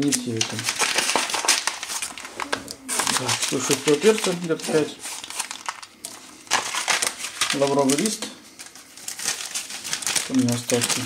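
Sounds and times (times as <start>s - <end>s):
peppercorns shaken out: 0.0s - 8.2s, 9.1s - 11.0s
spice packet crinkling: 0.0s - 11.0s.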